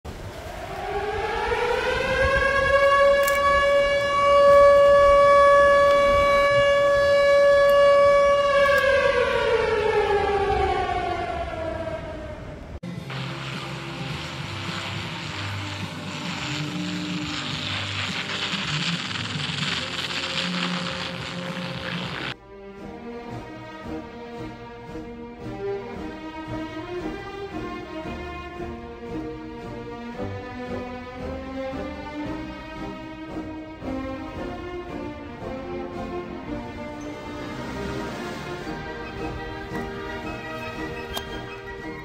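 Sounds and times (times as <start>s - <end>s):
steady rushing noise: 0.1s - 3.1s
air-raid siren wailing: 0.1s - 12.8s, 23.1s - 42.0s
low drone: 0.1s - 42.0s.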